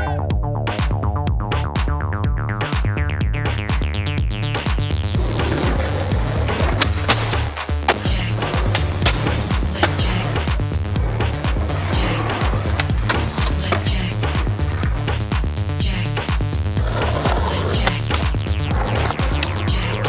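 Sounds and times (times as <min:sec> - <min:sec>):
electronic music with steady beat: 0:00.0 - 0:20.0
skateboard wheels rolling on pavement: 0:05.1 - 0:15.4, 0:16.6 - 0:20.0
skateboard clacks: 0:05.3 - 0:10.5, 0:11.2 - 0:14.8, 0:16.8 - 0:20.0.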